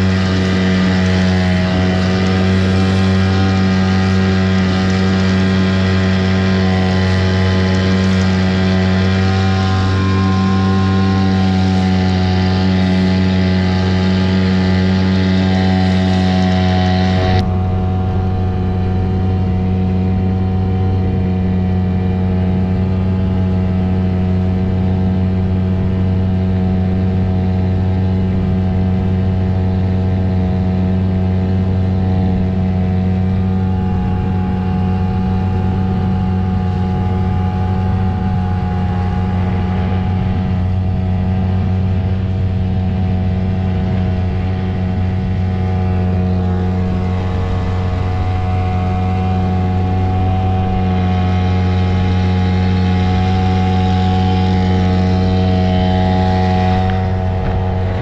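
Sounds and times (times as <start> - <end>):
outboard motor drone: 0.0 - 58.0.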